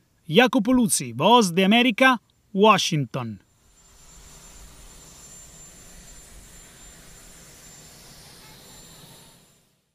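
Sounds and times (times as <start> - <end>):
aircraft turbine engine running: 3.5 - 9.7.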